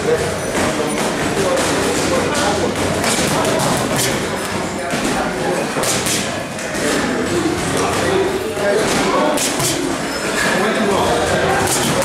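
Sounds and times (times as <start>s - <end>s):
boxing gloves smacking mitts: 1.5s - 6.8s, 8.8s - 10.1s, 11.6s - 12.0s.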